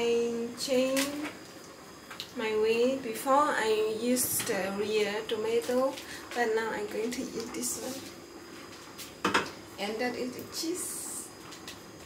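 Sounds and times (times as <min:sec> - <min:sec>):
woman talking: 0:00.0 - 0:01.3, 0:02.4 - 0:08.1, 0:09.8 - 0:11.3.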